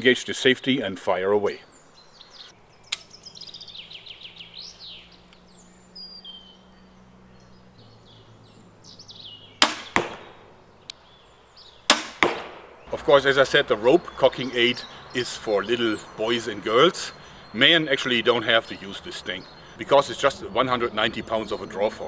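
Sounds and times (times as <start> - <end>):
crossbow firing sharp cracks: 9.6 - 10.6, 11.9 - 12.9.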